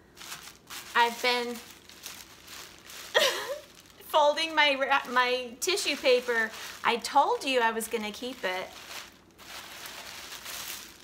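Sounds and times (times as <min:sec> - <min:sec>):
tissue paper rustling and crinkling: 0:00.0 - 0:11.0.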